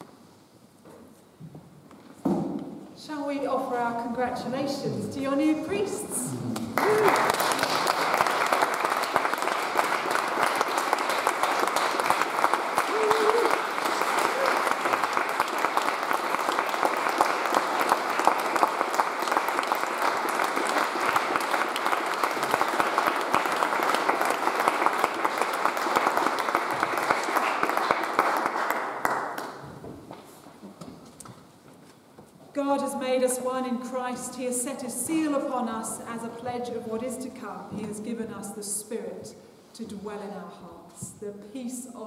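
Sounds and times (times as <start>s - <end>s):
congregation applauding: 6.3s - 29.8s.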